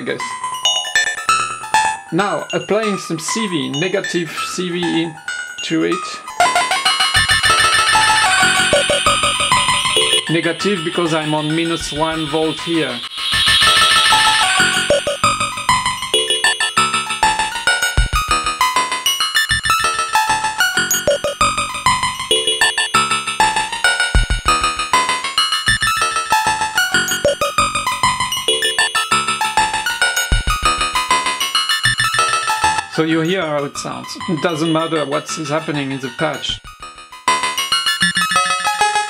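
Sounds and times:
bright high-pitched synth swell: 6.4 - 17.2, 28.4 - 29.6
synthesizer sequencer with delay echoes: 6.4 - 18.2, 20.9 - 23.3.

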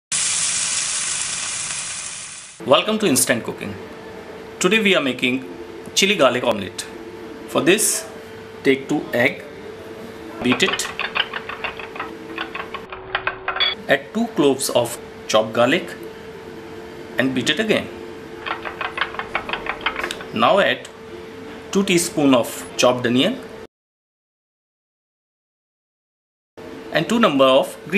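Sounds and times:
steady hiss: 0.1 - 2.6
metal spoon beating eggs in bowl: 10.4 - 13.7, 18.4 - 20.4.

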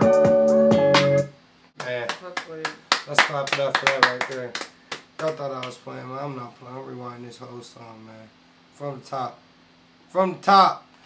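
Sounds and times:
people clapping hands: 1.8 - 5.8.

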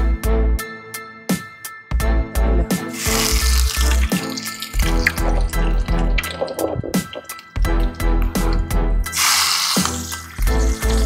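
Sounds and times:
background music with pulsing bass: 1.9 - 9.2, 10.0 - 11.0
oil sizzling in a pan: 2.9 - 5.8, 7.3 - 11.0.

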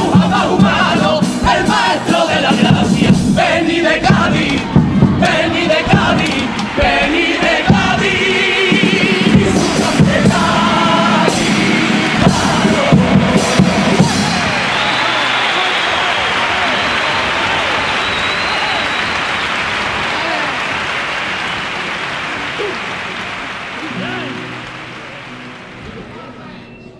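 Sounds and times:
choir singing with accompaniment: 0.0 - 15.2
audience applauding and cheering: 1.8 - 26.9.

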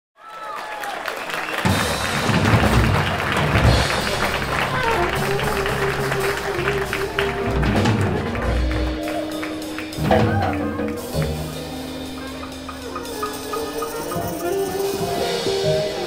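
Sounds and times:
jazz big band playing: 1.5 - 16.0.

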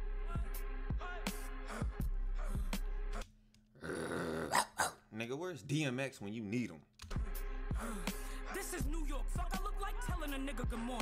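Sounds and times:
hip-hop track: 0.0 - 3.4, 7.0 - 11.0.

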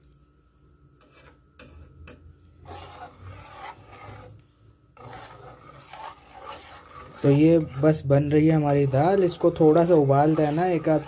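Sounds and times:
metal ladle scraping pot: 1.0 - 4.4, 5.0 - 11.0.

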